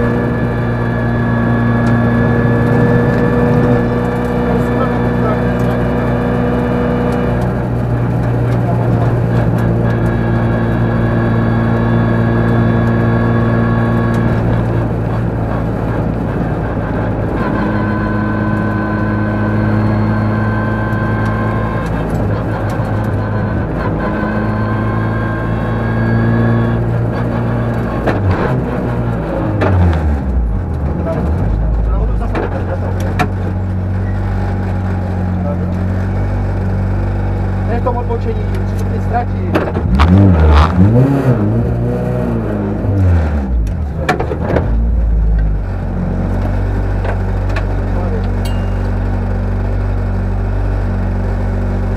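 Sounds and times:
rally car engine revving: 0.0s - 51.9s.

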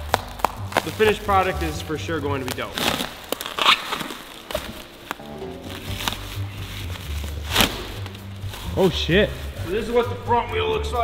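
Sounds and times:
plastic wrap crinkling and tearing: 0.0s - 10.0s
background music: 0.0s - 11.0s.

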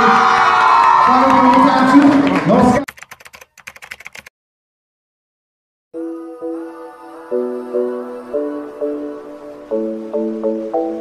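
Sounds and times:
crowd cheering: 0.0s - 2.9s
keyboard typing clicks: 2.9s - 4.3s.

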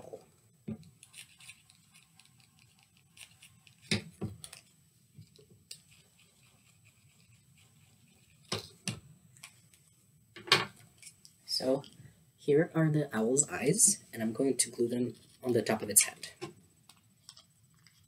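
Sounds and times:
marker drawing on paper cup: 5.7s - 8.5s.

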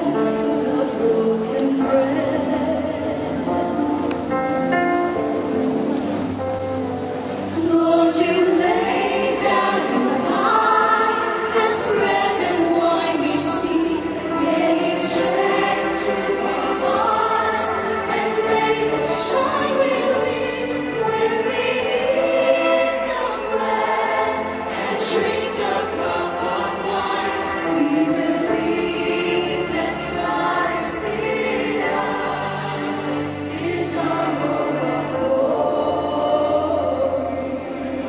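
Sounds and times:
choir singing: 0.0s - 6.2s, 7.3s - 38.0s.

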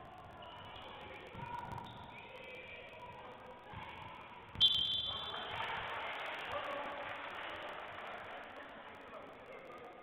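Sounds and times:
referee's whistle blast: 4.6s - 5.4s.

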